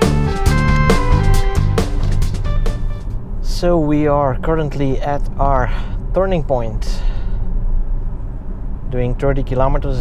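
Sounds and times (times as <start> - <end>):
road and tyre rumble: 0.0 - 10.0.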